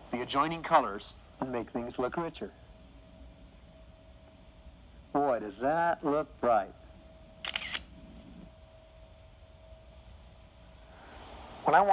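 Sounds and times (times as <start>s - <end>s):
faint steady hum: 0.0s - 11.9s
camera shutter clicks: 7.4s - 7.9s.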